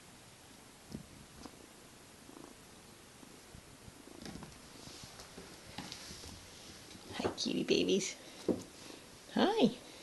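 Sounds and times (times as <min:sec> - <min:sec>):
kitten purring: 0:00.9 - 0:06.6.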